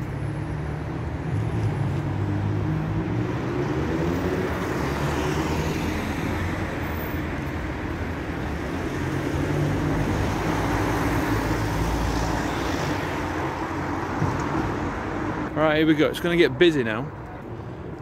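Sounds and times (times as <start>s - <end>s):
road noise: 0.0s - 18.0s
vehicle engines humming: 0.0s - 18.0s.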